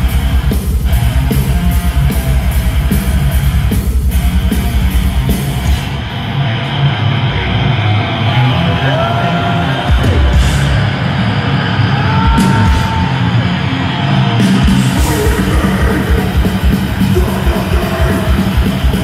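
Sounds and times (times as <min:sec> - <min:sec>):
death metal band playing live: 0:00.0 - 0:19.0.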